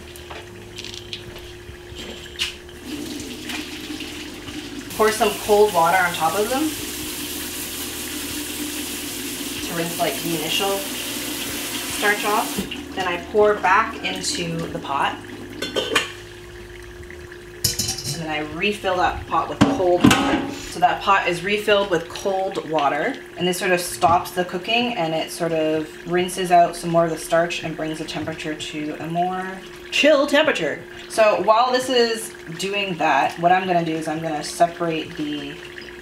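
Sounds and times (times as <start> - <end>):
steady low hum: 0.0 - 35.7
water pouring into sink: 0.8 - 36.0
cookware knocks: 17.6 - 18.2.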